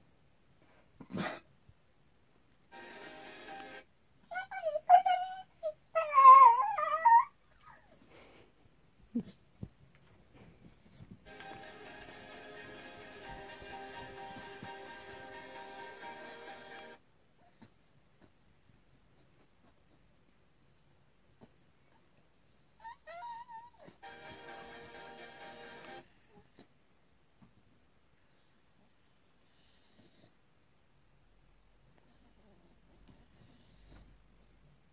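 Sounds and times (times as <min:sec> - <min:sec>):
dog whining: 0:04.2 - 0:08.0, 0:22.8 - 0:24.0.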